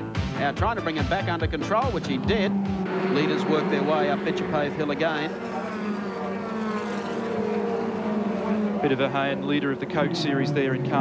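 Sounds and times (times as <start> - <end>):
racing car engine at high revs: 0.8 - 11.0.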